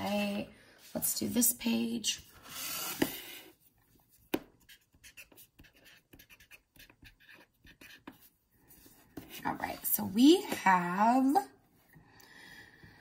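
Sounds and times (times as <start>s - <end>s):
marker scratching on paper: 4.3s - 9.9s.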